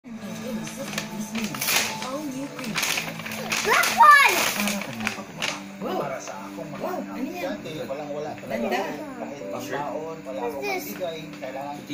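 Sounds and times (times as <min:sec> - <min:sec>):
paper bag rustling: 0:00.2 - 0:06.2.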